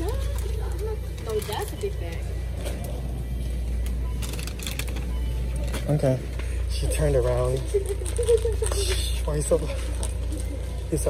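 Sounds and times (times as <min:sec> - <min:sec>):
faint background music: 0:00.0 - 0:11.0
steady low hum: 0:00.0 - 0:11.0.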